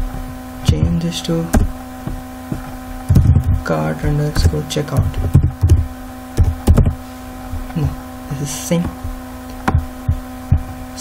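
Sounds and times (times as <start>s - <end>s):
electrical hum: 0.0s - 11.0s
soft low thumps: 0.0s - 11.0s.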